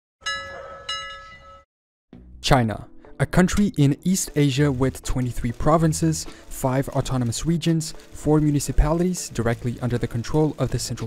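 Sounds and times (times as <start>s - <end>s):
bell-like chime strikes: 0.2s - 1.7s.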